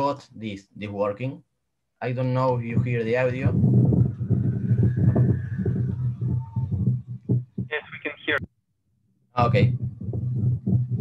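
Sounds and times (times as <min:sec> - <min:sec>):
wind turbine humming and fluttering: 0:02.8 - 0:07.7.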